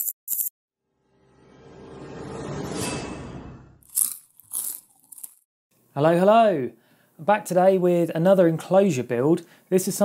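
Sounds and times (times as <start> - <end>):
swelling logo sound: 0.8 - 3.8.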